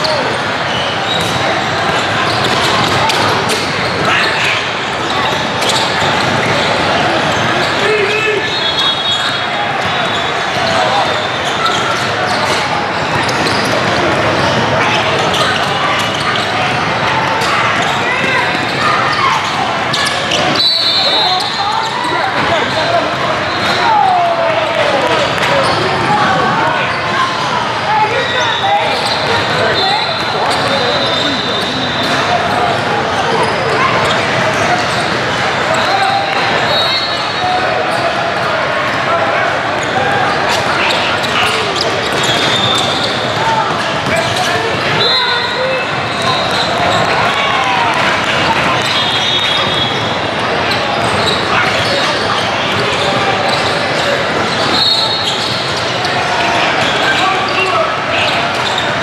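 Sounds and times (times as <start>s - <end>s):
chatter of many voices: 0.0s - 59.0s
sneakers squeaking on floor: 0.0s - 59.0s.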